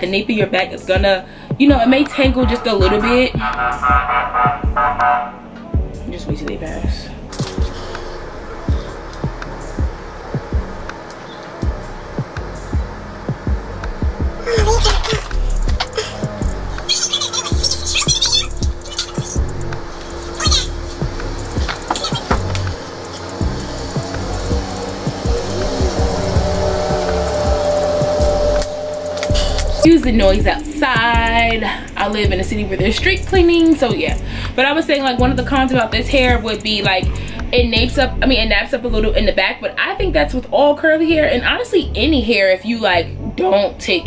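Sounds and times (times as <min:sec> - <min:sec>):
street-cleaning vehicle rumble: 0:00.0 - 0:44.0
scattered knocks: 0:17.5 - 0:25.4.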